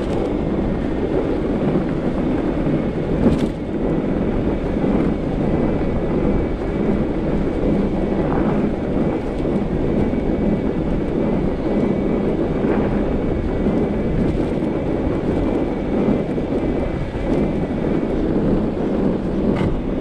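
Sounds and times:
bike tires rolling on packed snow: 0.0 - 20.0
wind on microphone: 0.0 - 20.0.

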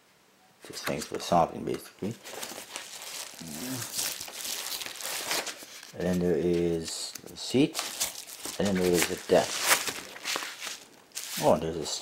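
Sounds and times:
paper mailer crinkling: 2.1 - 11.8
paper tearing: 7.8 - 11.6.

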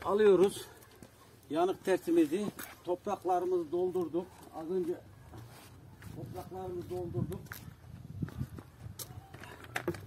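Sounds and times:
footsteps on soil: 1.8 - 9.5.

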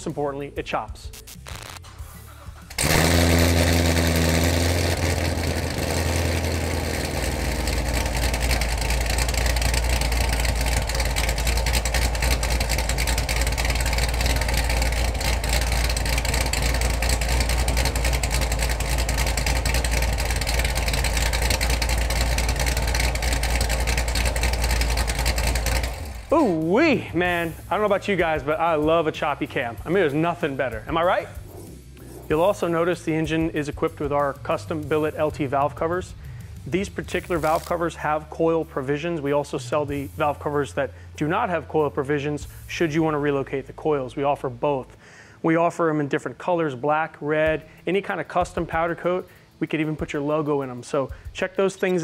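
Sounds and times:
car engine starting and idling: 1.8 - 44.6.

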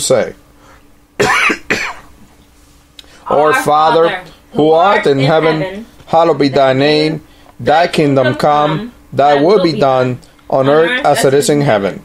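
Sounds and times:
man coughing: 1.2 - 2.1.

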